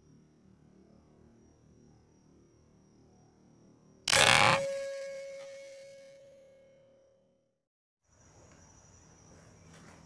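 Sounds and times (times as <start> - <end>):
ringing tone: 4.1 - 7.3.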